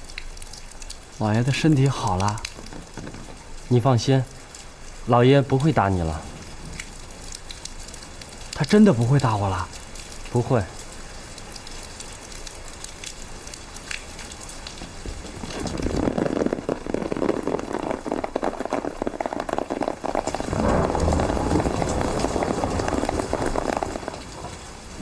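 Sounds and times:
rain pattering: 0.0 - 25.0.

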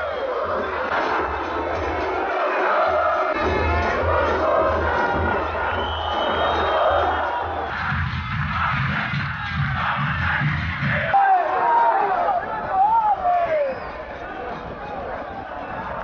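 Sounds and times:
crowd singing chants: 0.0 - 11.1
bass drum beat: 3.0 - 11.1.

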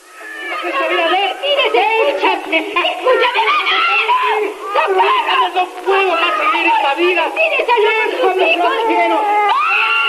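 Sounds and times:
people wailing and shouting: 0.0 - 10.0.

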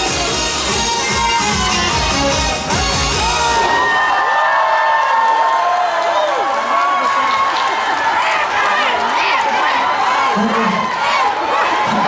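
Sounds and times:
trot song with drums: 0.0 - 3.8
crowd cheering and whooping: 2.6 - 12.0.

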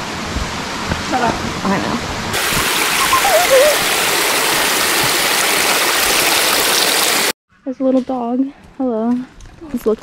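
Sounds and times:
creek rushing over rocks: 2.3 - 7.4.

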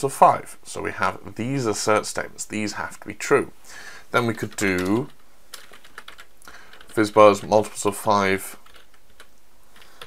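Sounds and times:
computer keyboard typing: 4.2 - 10.0.

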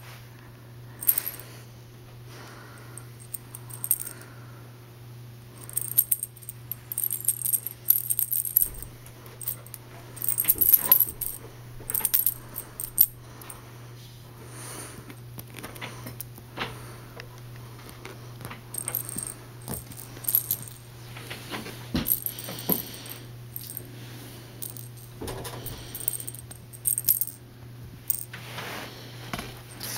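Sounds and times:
steady low hum: 0.0 - 29.9
light metallic jingling: 5.6 - 13.5, 18.8 - 20.9, 22.0 - 23.9, 24.6 - 27.4.

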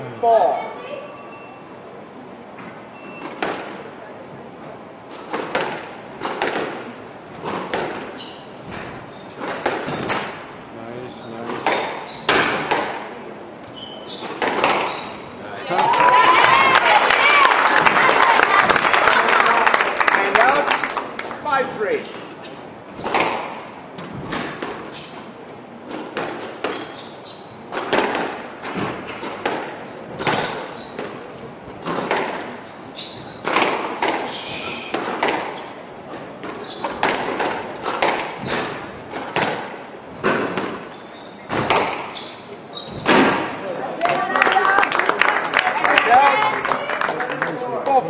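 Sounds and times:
squash ball hitting rackets and walls: 2.4 - 3.9, 5.0 - 19.2, 22.5 - 44.6.

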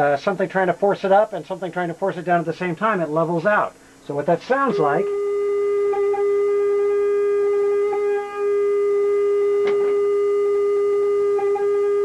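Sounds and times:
sine test tone with phaser: 4.0 - 12.0.

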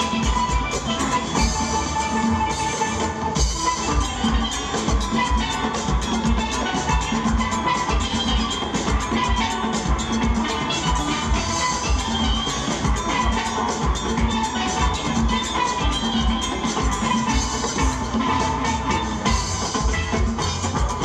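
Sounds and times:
steel pans playing melody: 0.0 - 21.0.

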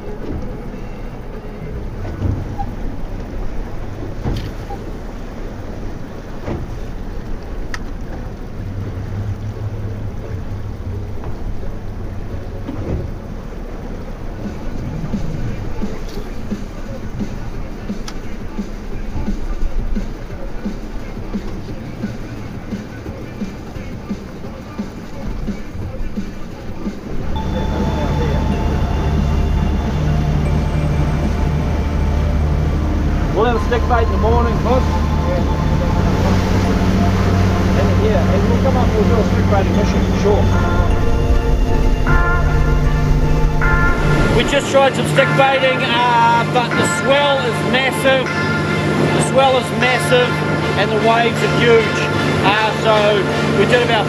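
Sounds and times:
outboard motor running: 0.0 - 44.6
sea noise: 0.0 - 54.0
wind: 0.0 - 54.0.

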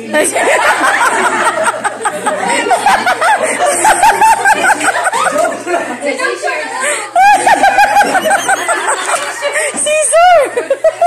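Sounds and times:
hearty laughter: 0.2 - 6.2, 7.1 - 11.0.

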